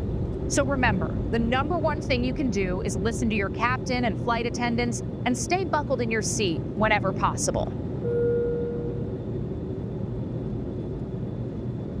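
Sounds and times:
airliner cabin engine rumble: 0.0 - 12.0
short steady tone: 8.0 - 9.1.

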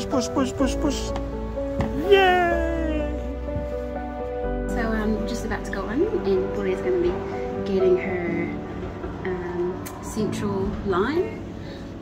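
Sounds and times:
background music: 0.0 - 12.0
drawn-out vocal cry: 2.0 - 3.4.

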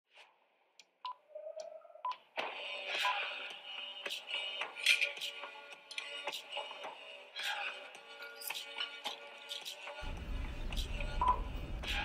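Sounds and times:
music: 0.1 - 12.0.

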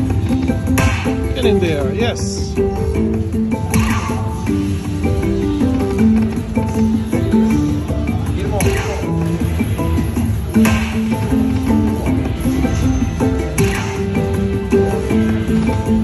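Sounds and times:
slot machine bonus music: 0.0 - 16.0.

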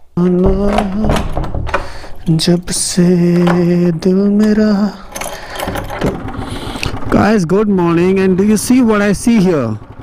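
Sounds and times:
keys rattling in padlock: 4.9 - 6.2.

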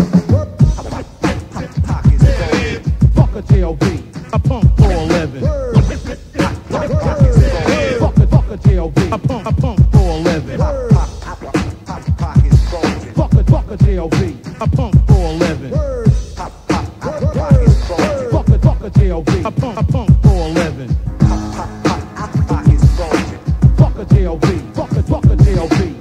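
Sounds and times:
drum beat with heavy bass: 0.0 - 26.0
man rapping: 0.2 - 26.0.

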